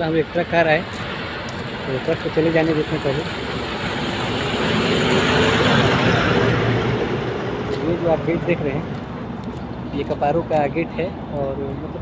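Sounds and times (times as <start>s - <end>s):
truck driving past: 1.0s - 9.4s.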